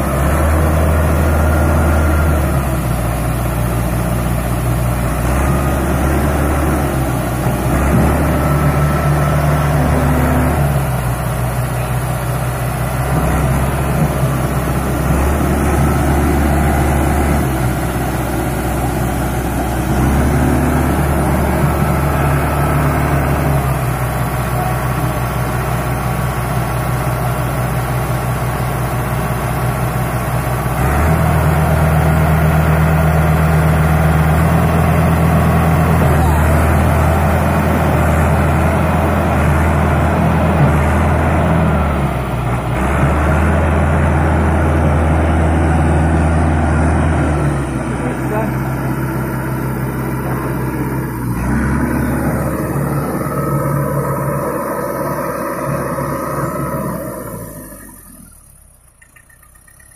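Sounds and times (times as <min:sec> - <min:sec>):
tractor diesel engine under load: 0:00.0 - 0:59.9.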